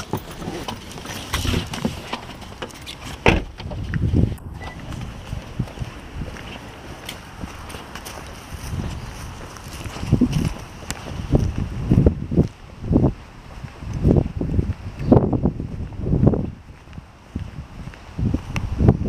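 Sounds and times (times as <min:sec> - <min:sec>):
footsteps on concrete: 0:00.0 - 0:19.0
wind on microphone: 0:03.1 - 0:19.0.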